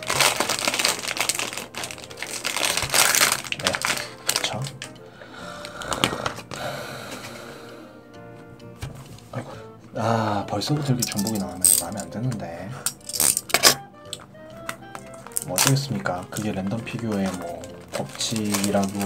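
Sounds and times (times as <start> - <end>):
foil wrapper crinkling: 0.0 - 6.6, 10.9 - 12.1, 12.9 - 19.0
background music: 0.0 - 19.0.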